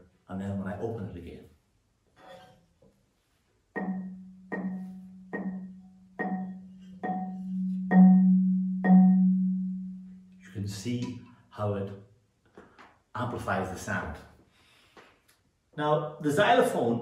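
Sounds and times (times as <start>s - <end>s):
marimba low notes: 3.8s - 11.3s.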